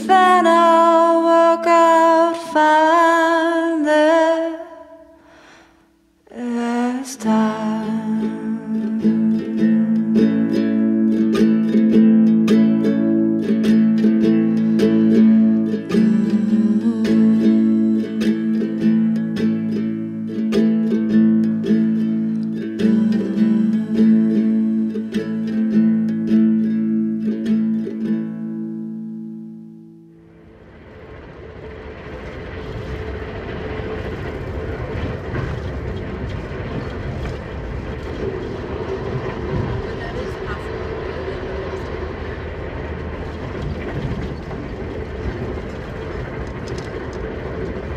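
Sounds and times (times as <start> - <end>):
guitalele chords: 0.0 - 47.9
train running noise on board: 30.3 - 47.9.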